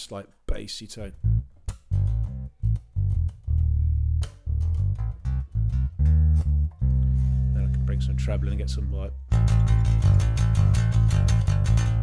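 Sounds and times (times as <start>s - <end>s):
electric bass plucked notes: 1.1s - 12.0s.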